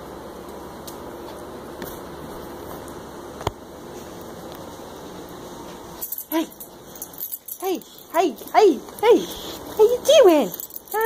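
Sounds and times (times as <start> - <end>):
metallic jingle: 6.0 - 11.0.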